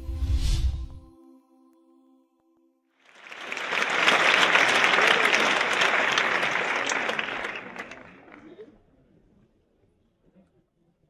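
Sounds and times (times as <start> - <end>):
audience applause: 3.1 - 8.6.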